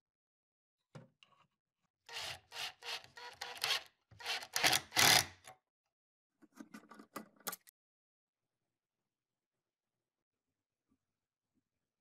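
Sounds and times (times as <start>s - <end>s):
drill driving screw into wood: 2.1s - 5.5s.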